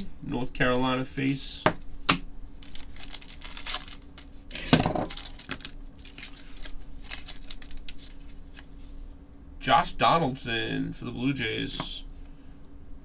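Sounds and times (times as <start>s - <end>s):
foil wrappers crinkling and tearing: 2.6s - 8.8s.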